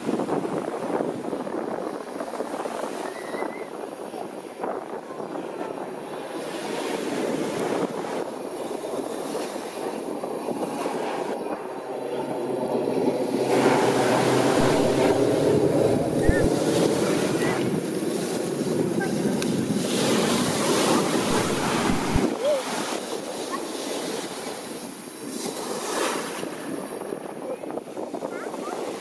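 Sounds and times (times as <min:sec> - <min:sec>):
turboprop plane flying overhead: 0:00.0 - 0:29.0.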